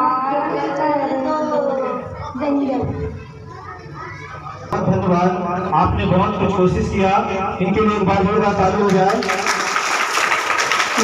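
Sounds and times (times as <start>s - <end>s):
children chattering: 0.0s - 4.8s
man speaking loudly: 4.7s - 9.3s.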